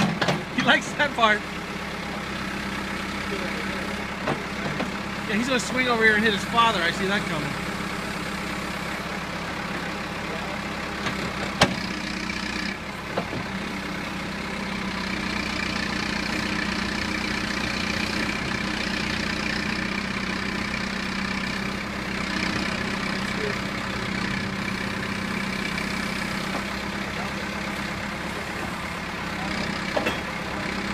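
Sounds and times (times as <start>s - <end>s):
backhoe diesel engine running: 0.0s - 30.9s.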